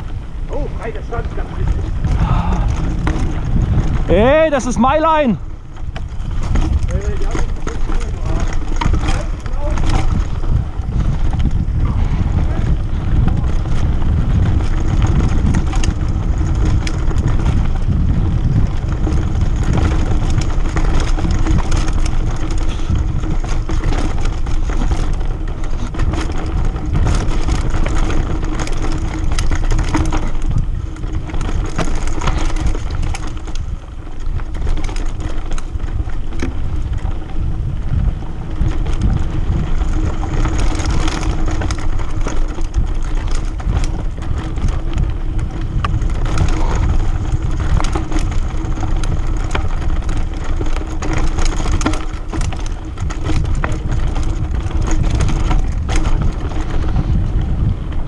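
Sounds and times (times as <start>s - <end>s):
bike rattling: 0.0s - 58.0s
tyre noise on dirt: 0.0s - 58.0s
wind rumble on microphone: 0.0s - 58.0s.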